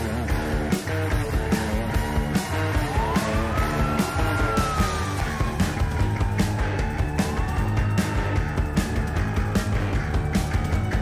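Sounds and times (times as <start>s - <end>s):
post-punk rock music: 0.0s - 11.0s.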